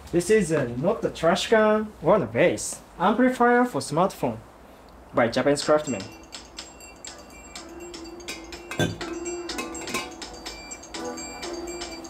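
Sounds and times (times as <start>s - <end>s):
music with ticking beat: 5.6s - 12.0s
phone knocking on glass: 8.6s - 10.1s.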